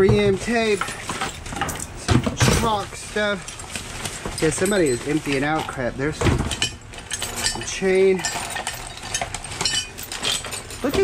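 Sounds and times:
plastic bags rustling: 0:00.0 - 0:11.0
metal chain clinking: 0:00.2 - 0:11.0.

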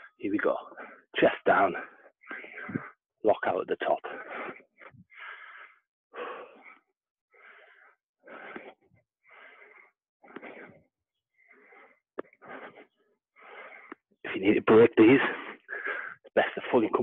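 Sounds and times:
man breathing hard: 0:01.9 - 0:03.0, 0:04.1 - 0:14.1, 0:15.2 - 0:16.3.

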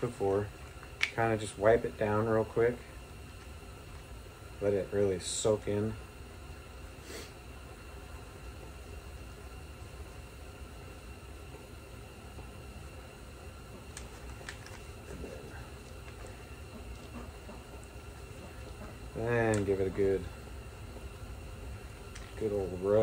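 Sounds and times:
low steady background noise: 0:00.0 - 0:23.0.

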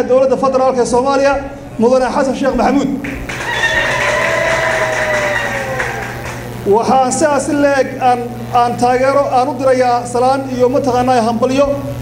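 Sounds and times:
audience noise in a hall: 0:03.0 - 0:06.7
long high-pitched held call: 0:03.4 - 0:06.5.

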